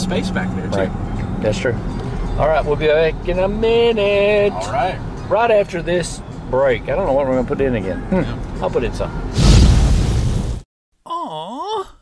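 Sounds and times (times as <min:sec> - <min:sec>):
loud rushing noise burst: 0:09.3 - 0:10.6.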